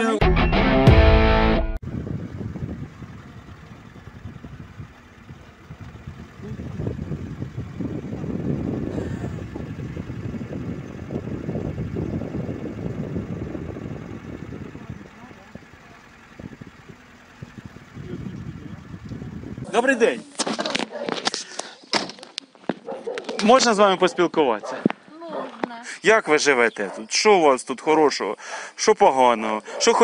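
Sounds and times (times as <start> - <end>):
car engine and tyre noise: 1.8 - 25.1.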